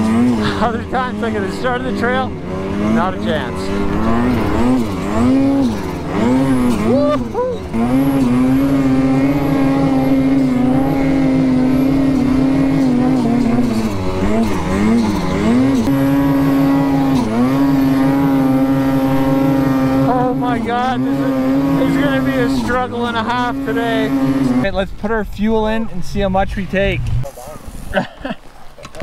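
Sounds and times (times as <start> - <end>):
snowmobile engine revving: 0.0 - 28.4.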